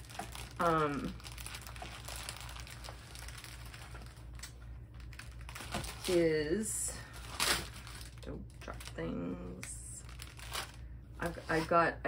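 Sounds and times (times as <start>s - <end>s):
rustling and crinkling fabric: 0.0s - 9.0s, 10.0s - 12.0s.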